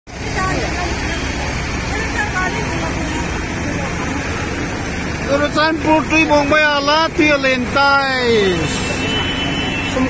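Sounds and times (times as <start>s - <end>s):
floodwater rushing: 0.1s - 10.0s
vehicles driving through water: 0.1s - 10.0s.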